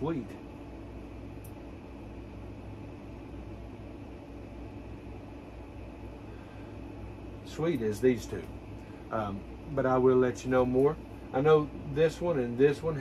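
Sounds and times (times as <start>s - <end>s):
machine hum with hiss: 0.0s - 13.0s.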